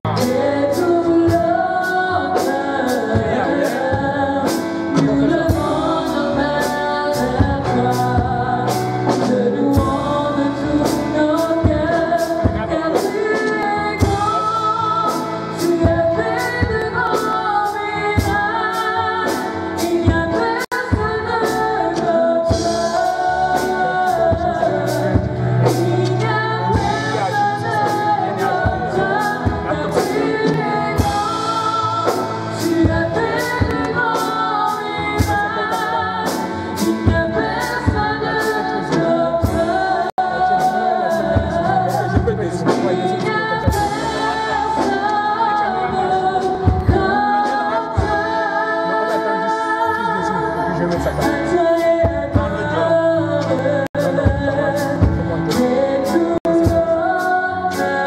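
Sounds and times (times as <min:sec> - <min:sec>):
instrumental accompaniment: 0:00.0 - 0:58.0
group singing worship song: 0:21.4 - 0:58.0.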